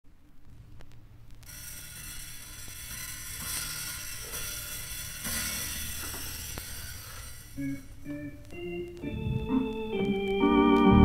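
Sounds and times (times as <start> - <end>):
vinyl surface hiss and crackle: 0.0 - 11.0
low hum: 0.1 - 10.3
vinyl record clicks: 0.2 - 1.5, 7.6 - 10.9.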